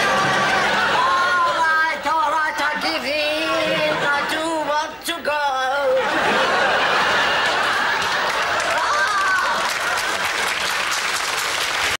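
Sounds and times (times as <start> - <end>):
studio audience applauding: 0.0 - 2.0, 6.5 - 12.0.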